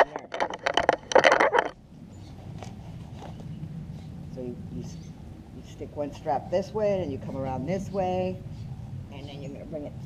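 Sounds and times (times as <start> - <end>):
leather strap scraping through metal ring: 0.0 - 1.8.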